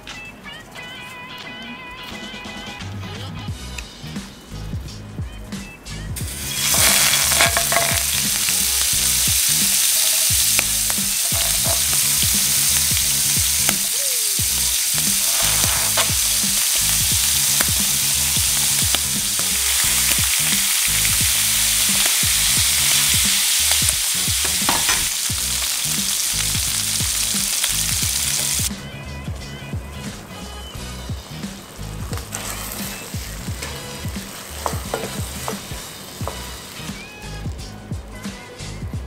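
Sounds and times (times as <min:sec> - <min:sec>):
squid sizzling in hot oil: 0:06.2 - 0:28.7, 0:30.1 - 0:37.5
chopsticks clicking against pan: 0:06.7 - 0:18.0.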